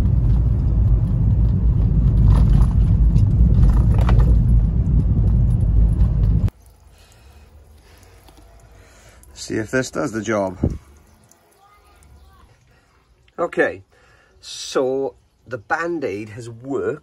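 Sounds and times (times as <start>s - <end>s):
car road and engine rumble: 0.0s - 6.9s.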